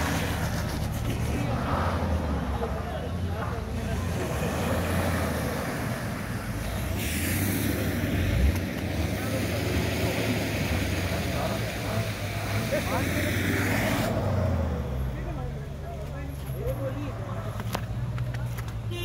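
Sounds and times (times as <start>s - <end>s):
car engine humming: 0.0s - 19.0s
broad hiss: 6.8s - 9.6s.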